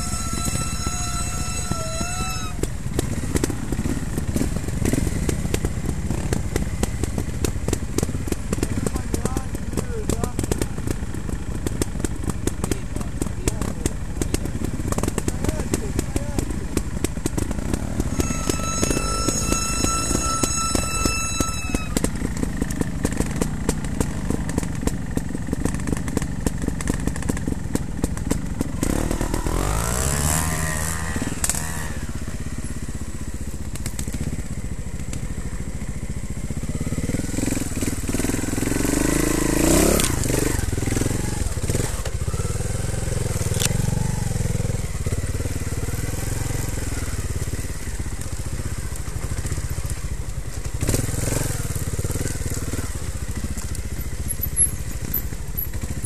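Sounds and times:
motorcycle engine revving: 0.0 - 56.0
motorcycle knocking over ground: 0.0 - 56.0.

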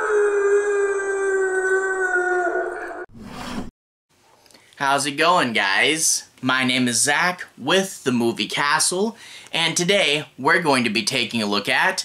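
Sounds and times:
long howl: 0.0 - 3.1.

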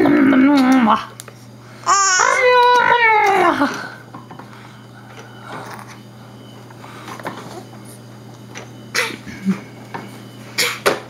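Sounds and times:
baby squealing: 1.9 - 3.0.

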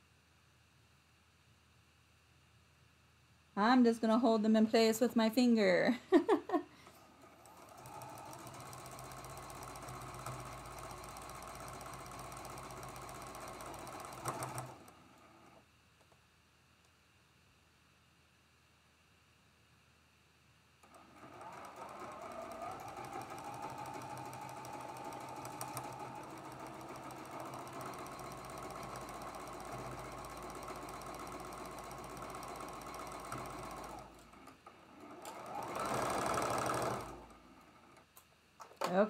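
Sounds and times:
electric sewing machine stitching: 7.0 - 15.6, 20.8 - 38.0.

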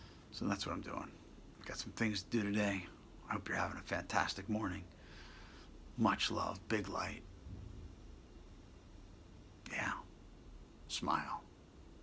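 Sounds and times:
man whispering: 9.6 - 10.2, 10.9 - 11.5.

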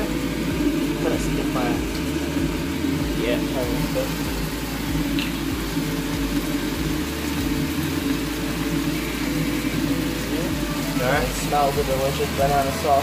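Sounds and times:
prawns sizzling in a frying pan: 0.0 - 13.0
steady low hum: 0.0 - 13.0.

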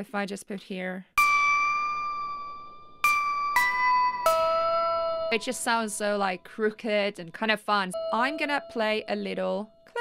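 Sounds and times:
bell-like synth notes: 1.2 - 6.8, 8.0 - 10.0.

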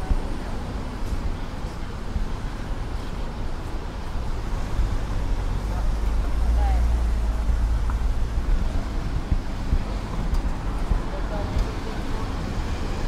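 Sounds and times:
cars passing: 0.0 - 13.0.

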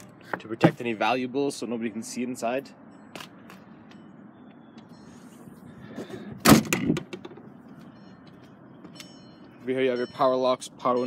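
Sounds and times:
car liftgate thud: 6.4 - 7.3.

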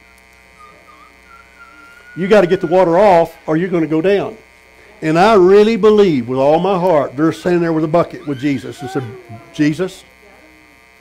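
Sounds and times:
wavering whistle-like tone: 0.0 - 3.4
low electrical hum: 0.0 - 11.0.

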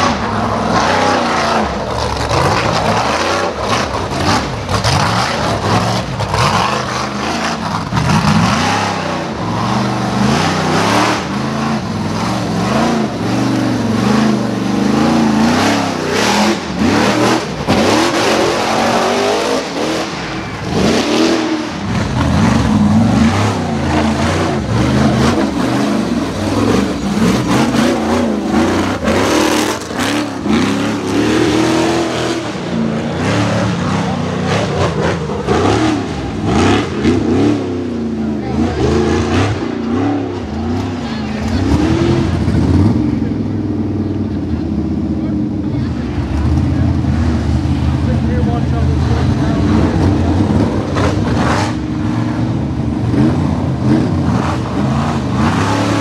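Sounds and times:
engine revving hard: 0.0 - 43.6, 47.5 - 56.0.

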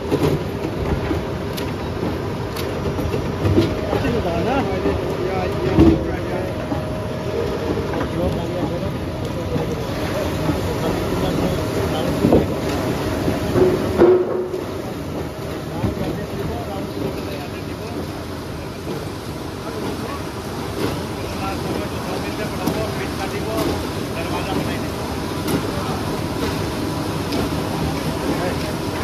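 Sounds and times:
veneer lathe motors humming: 0.0 - 29.0.

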